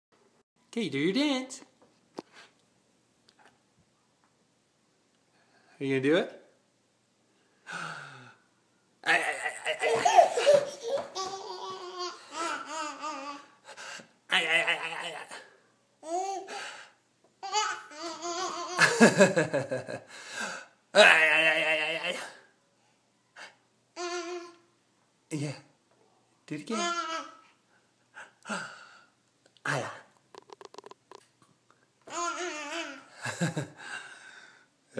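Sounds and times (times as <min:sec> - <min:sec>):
toddler laughing: 0:09.1 - 0:13.5, 0:17.4 - 0:19.0.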